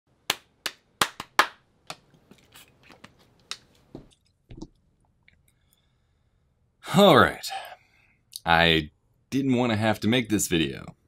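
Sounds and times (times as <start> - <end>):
hand claps: 0.3 - 2.0.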